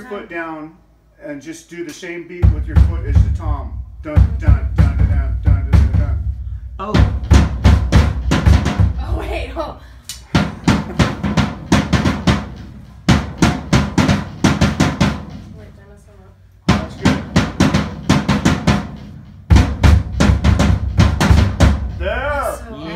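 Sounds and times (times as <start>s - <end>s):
drum kit playing: 2.4s - 22.8s.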